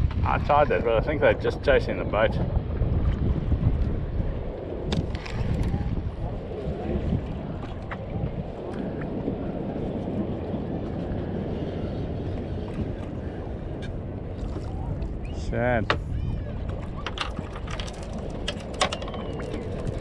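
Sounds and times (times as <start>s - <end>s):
water wash: 0.0s - 20.0s
wind buffeting microphone: 0.0s - 20.0s.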